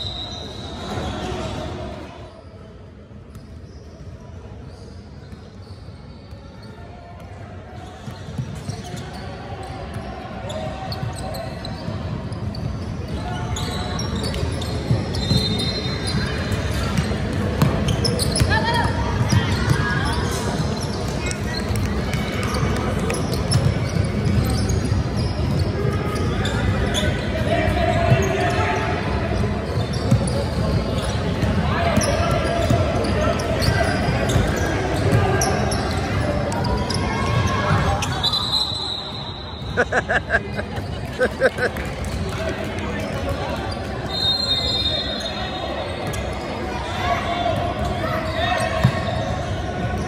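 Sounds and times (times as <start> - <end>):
players and spectators calling out: 6.6 - 50.0.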